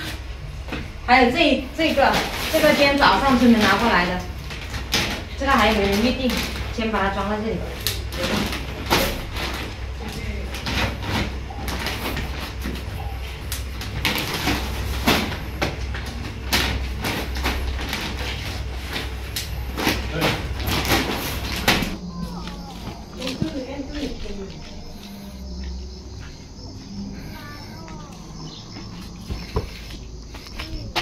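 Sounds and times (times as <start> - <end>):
steady low hum: 0.0 - 31.0
plastic bags crinkling: 1.8 - 26.5.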